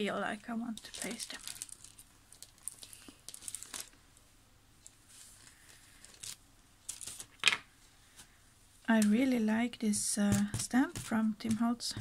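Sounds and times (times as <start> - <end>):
paper rustling: 0.8 - 4.0, 4.8 - 7.6.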